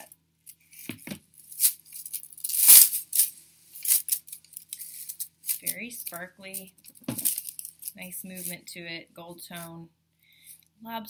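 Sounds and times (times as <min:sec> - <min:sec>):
metal chain jingling: 0:07.1 - 0:08.6.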